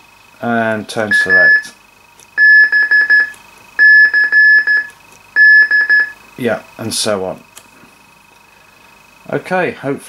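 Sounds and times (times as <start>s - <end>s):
radio beeping through speaker: 1.1s - 1.7s.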